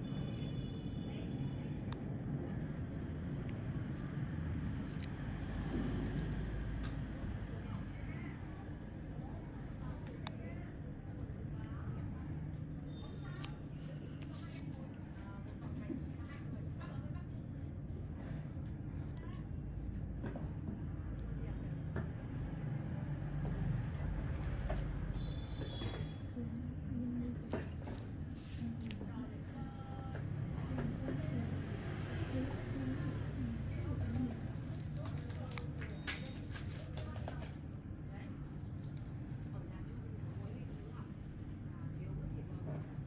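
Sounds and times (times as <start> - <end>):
faint indistinct voices: 0.0 - 43.0.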